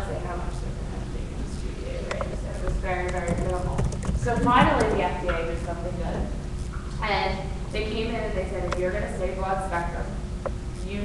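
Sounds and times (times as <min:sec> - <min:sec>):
woman speaking indistinctly: 0:00.0 - 0:06.4, 0:07.0 - 0:10.2, 0:10.8 - 0:11.0
sharp clicks: 0:02.1 - 0:05.4
footsteps: 0:02.7 - 0:05.4.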